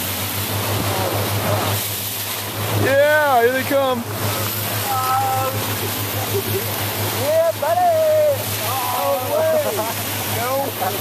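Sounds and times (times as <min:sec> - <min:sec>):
boat engine hum: 0:00.0 - 0:11.0
water rushing along hull: 0:00.0 - 0:11.0
person laughing: 0:05.8 - 0:06.9.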